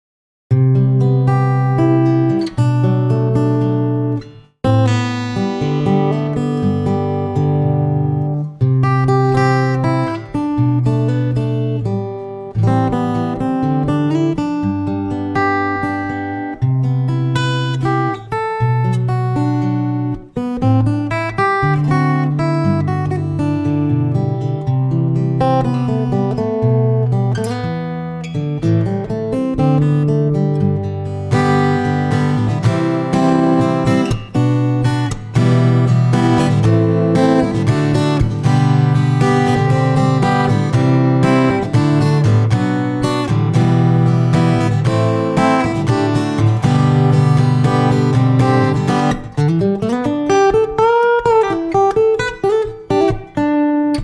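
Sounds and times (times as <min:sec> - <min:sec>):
fingerpicked acoustic guitar: 0:00.5 - 0:54.0.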